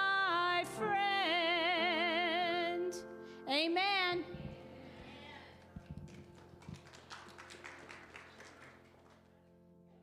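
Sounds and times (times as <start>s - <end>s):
faint scattered clapping: 5.6s - 9.4s.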